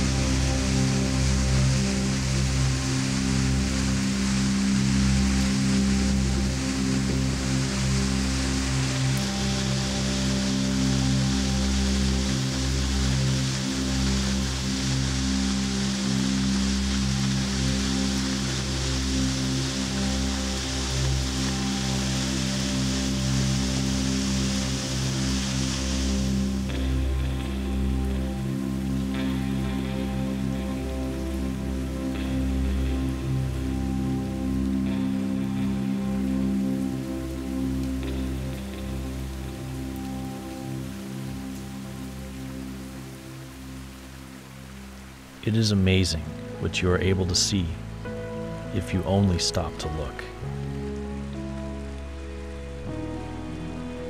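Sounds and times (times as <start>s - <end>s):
slow ambient music: 0.0s - 54.0s
waterfall rushing: 0.0s - 54.0s.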